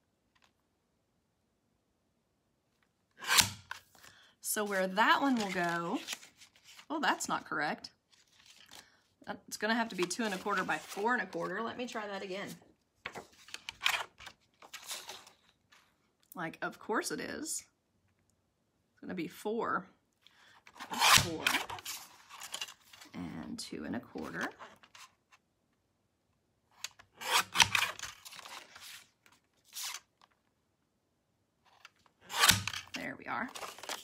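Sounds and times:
paper rustling and sliding: 4.7 - 6.9, 8.1 - 8.9, 9.9 - 15.9, 27.4 - 30.2, 33.5 - 34.0.

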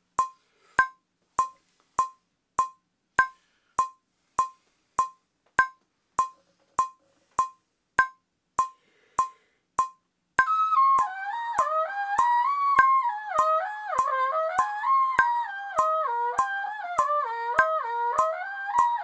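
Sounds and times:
metronome clicking: 0.0 - 19.0.

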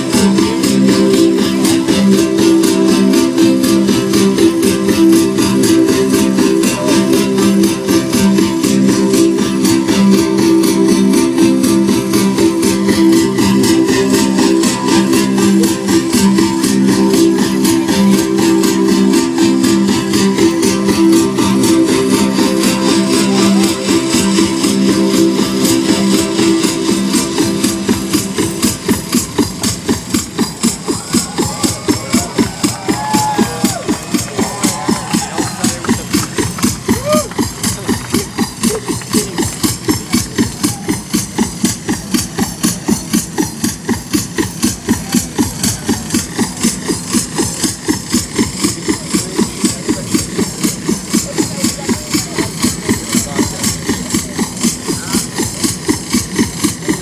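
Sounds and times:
live music over pa: 0.0 - 57.0.

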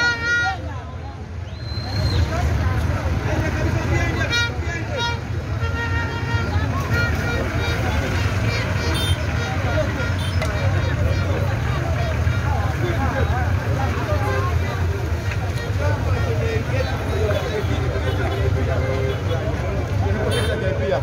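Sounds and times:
crowd talking and calling out: 0.0 - 21.0
minibus engine rumbling: 0.0 - 21.0.

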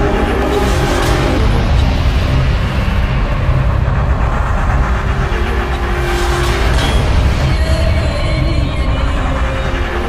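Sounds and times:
low cinematic rumble: 0.0 - 10.0
whoosh: 0.0 - 10.0.

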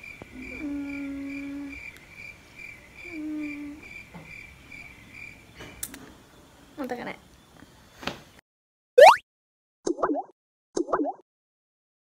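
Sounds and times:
cricket chirping: 0.0 - 5.6
person humming: 0.4 - 1.8, 3.0 - 3.8.

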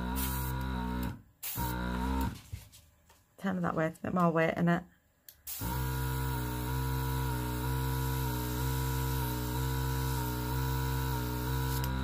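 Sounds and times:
compressor motor humming: 0.0 - 2.4, 5.5 - 12.0.

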